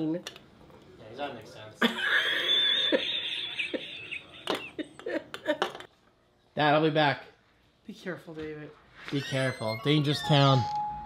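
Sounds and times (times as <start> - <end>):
breathy laughter: 1.8 - 5.6.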